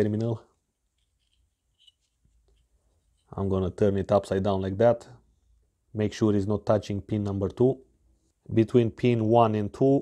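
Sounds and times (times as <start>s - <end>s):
faint scratches and clicks: 0.9s - 3.4s.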